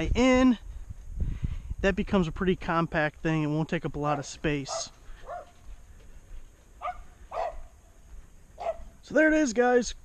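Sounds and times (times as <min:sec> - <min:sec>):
dog barking: 0:04.6 - 0:05.6, 0:06.8 - 0:07.7, 0:08.6 - 0:08.9.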